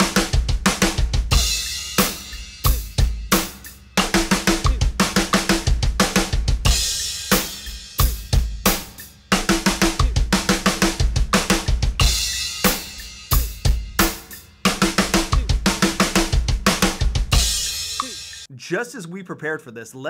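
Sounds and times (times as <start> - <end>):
fast strokes on snare and toms: 0.0 - 18.5
bass drum kicks: 2.4 - 7.0, 9.8 - 14.1, 14.7 - 17.7.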